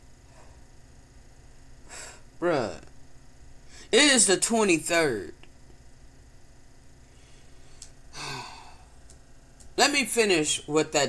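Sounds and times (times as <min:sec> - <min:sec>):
man sighing: 0:08.2 - 0:08.9.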